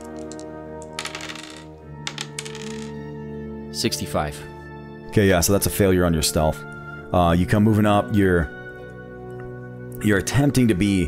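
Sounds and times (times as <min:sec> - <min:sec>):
dice clattering on a table: 0:00.0 - 0:03.0
ambient background music: 0:00.0 - 0:11.0.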